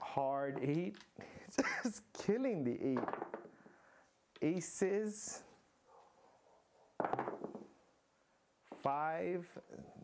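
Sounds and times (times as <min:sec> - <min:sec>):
dice clattering on a table: 0:02.9 - 0:03.6, 0:07.0 - 0:07.7.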